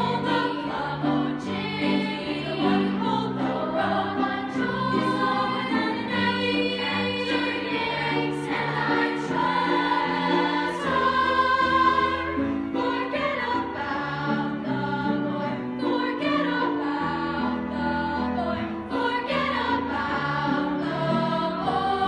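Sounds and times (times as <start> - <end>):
choir singing: 0.0 - 22.0.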